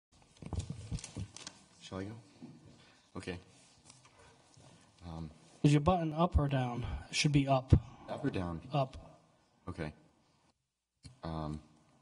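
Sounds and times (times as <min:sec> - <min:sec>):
papers handling noise: 0:00.2 - 0:01.8
man speaking: 0:05.0 - 0:10.1, 0:11.1 - 0:11.8.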